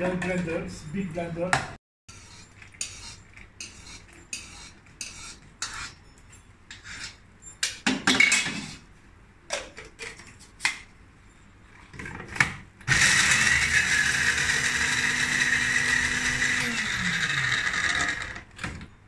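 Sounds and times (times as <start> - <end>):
kitchen utensils clattering: 7.6 - 8.8
blender grinding beans: 12.9 - 18.5.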